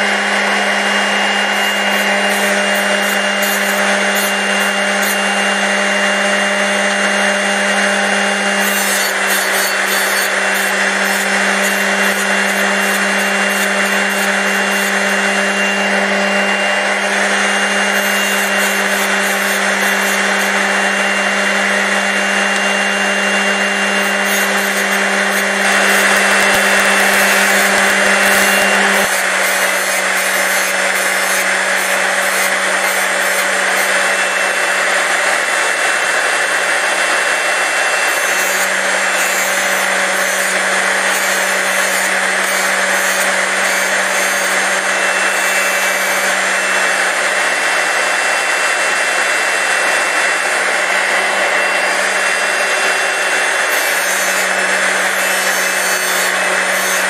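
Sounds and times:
drill sharpener motor hum: 0.0 - 57.0
grinding wheel on drill bit: 0.0 - 57.0.

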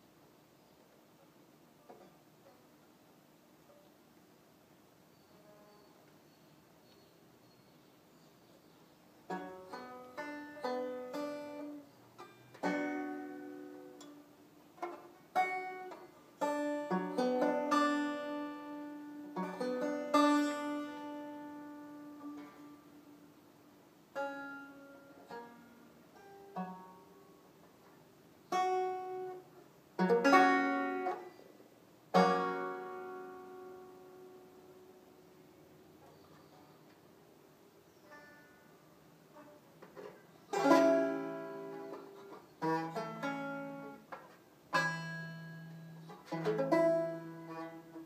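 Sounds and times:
banjo picked and strummed: 0.6 - 4.1, 5.1 - 48.0.

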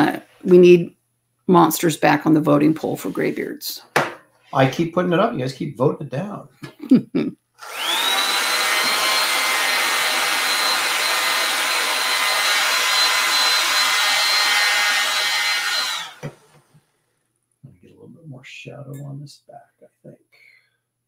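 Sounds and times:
hair dryer whining: 7.6 - 16.8.

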